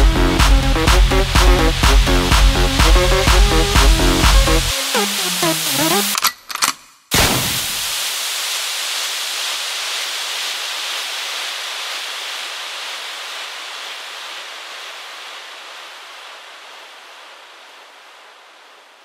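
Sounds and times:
synthesized white noise hiss: 0:07.2 - 0:19.0.

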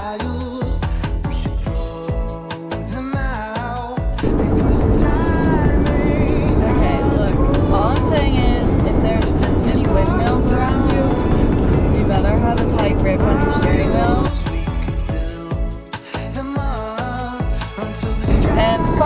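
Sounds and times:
music: 0:00.0 - 0:19.0
car road and engine rumble: 0:04.2 - 0:14.4
woman talking: 0:06.6 - 0:14.4, 0:18.3 - 0:19.0.

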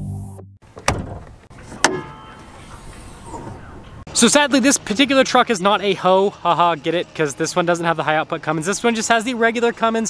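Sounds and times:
hood latch metallic clunk: 0:00.7 - 0:02.3.

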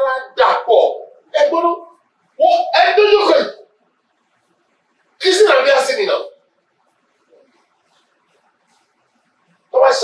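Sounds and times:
man speaking into a microphone: 0:00.0 - 0:03.7, 0:05.2 - 0:06.4, 0:09.7 - 0:10.0.

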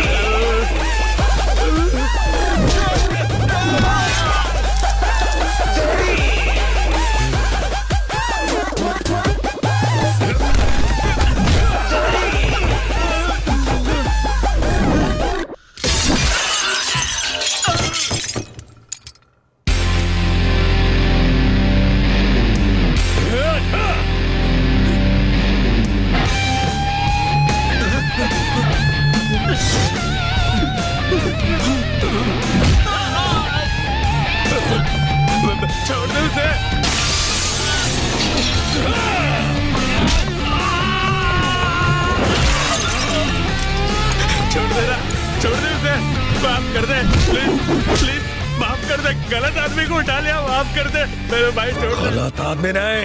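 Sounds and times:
action film score: 0:00.0 - 0:16.3, 0:19.6 - 0:53.0
background music: 0:00.0 - 0:19.1, 0:19.7 - 0:53.0
glass shattering and crashing: 0:15.8 - 0:19.5, 0:36.8 - 0:39.0, 0:42.3 - 0:44.6.

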